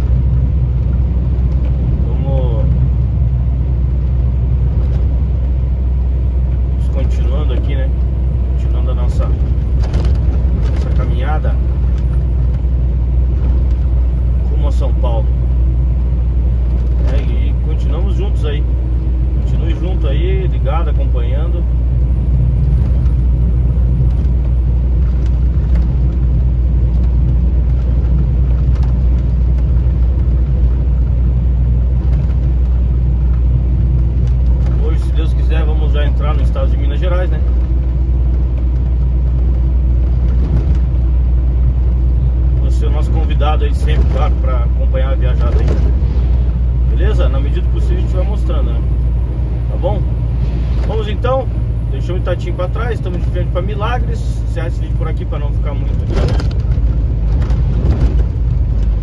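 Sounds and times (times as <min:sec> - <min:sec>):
road noise: 0:00.0 - 0:59.0
vehicle engine drone: 0:00.0 - 0:59.0.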